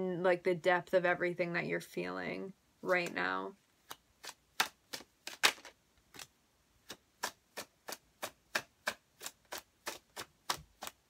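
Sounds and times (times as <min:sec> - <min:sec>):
cards being shuffled: 0:03.8 - 0:11.0.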